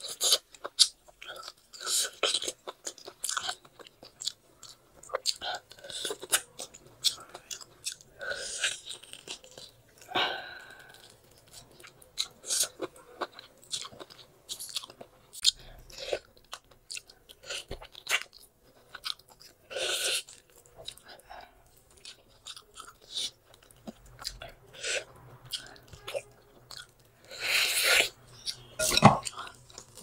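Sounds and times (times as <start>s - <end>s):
chewing and gnawing bone: 0.0s - 30.0s.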